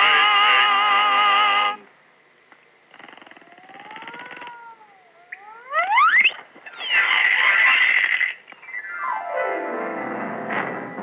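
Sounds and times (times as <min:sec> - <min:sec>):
music falling run of notes: 0:08.8 - 0:11.0.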